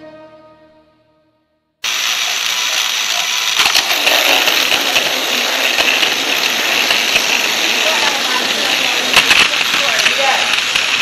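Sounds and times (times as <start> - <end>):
toy train motor whirring: 1.8 - 11.0.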